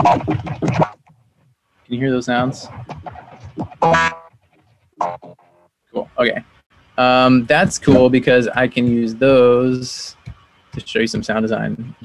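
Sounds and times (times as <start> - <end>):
electronic instrument notes: 3.6 - 4.3, 5.0 - 5.7.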